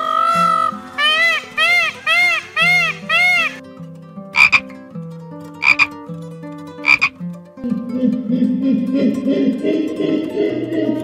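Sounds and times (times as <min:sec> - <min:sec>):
high call: 0:00.0 - 0:03.6, 0:04.4 - 0:04.6, 0:05.6 - 0:05.9, 0:06.8 - 0:07.1
tree frog croaking: 0:00.0 - 0:03.6, 0:04.4 - 0:04.7, 0:05.6 - 0:06.0, 0:06.8 - 0:07.2.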